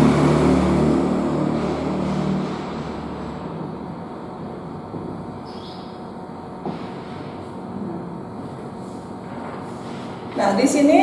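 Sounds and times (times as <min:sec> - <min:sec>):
passing vehicle engine hum: 0:00.0 - 0:05.4
steady background hum: 0:00.0 - 0:11.0.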